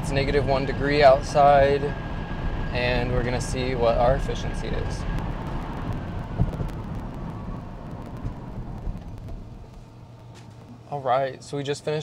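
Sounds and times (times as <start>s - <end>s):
tyre rumble inside car: 4.7s - 10.8s.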